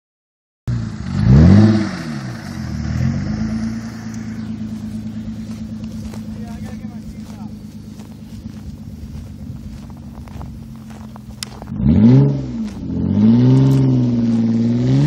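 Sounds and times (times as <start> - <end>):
car engine revving: 0.7 - 15.0.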